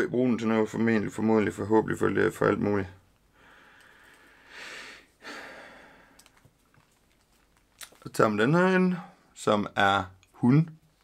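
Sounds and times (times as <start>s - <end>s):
man breathing: 3.3s - 6.4s.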